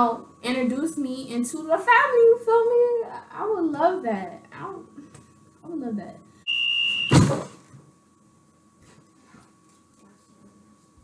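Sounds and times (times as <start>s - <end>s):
high-pitched electronic beep: 6.5s - 7.2s
loud thump: 7.0s - 7.7s.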